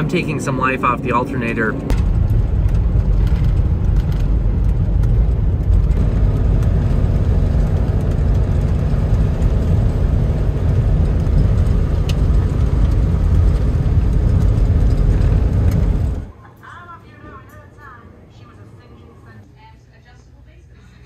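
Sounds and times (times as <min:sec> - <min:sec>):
van engine rumble: 0:00.0 - 0:16.9.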